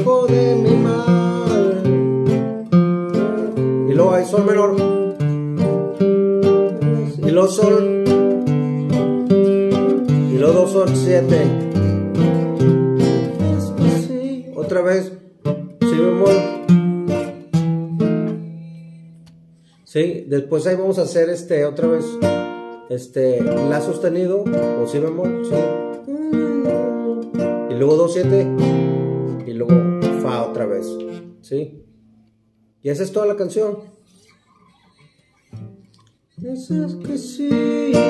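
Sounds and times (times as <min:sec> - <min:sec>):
acoustic guitar strumming: 0:00.0 - 0:19.8, 0:21.5 - 0:32.3, 0:33.8 - 0:38.0.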